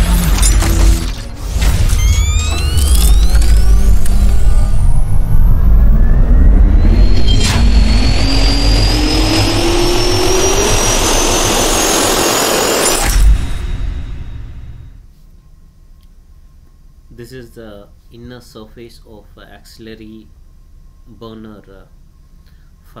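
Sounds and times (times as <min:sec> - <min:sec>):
heavy bass rumble: 0:00.0 - 0:15.0
rising turbine-like whine: 0:01.4 - 0:15.0.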